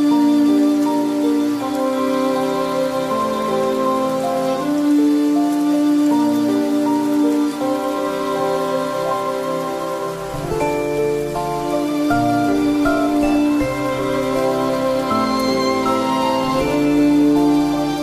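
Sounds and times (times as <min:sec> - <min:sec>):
calm instrumental music: 0:00.0 - 0:18.0
falling rain: 0:00.0 - 0:18.0.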